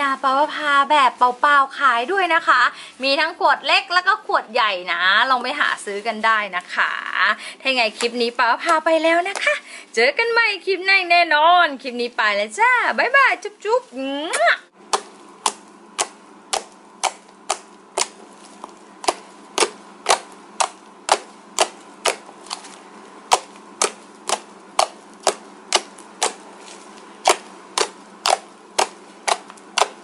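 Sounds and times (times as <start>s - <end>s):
slime air pockets popping: 14.3s - 30.0s.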